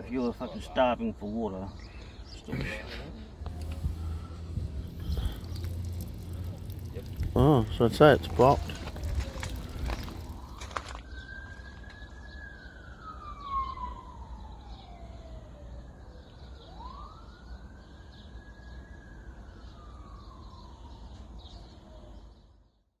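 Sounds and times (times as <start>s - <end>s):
faint siren wailing: 3.3s - 22.5s
low steady rumble: 3.4s - 10.5s
water splashing: 3.5s - 11.0s.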